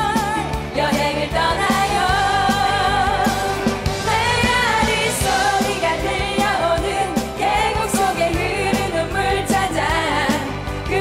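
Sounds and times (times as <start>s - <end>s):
band with steady drum beat: 0.0s - 11.0s
women singing pop song: 0.0s - 11.0s.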